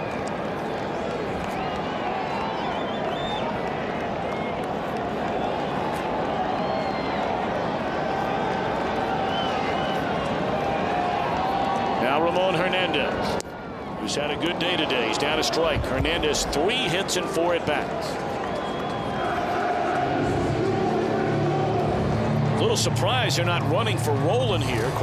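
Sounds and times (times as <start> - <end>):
crowd of fans talking: 12.0 - 25.0.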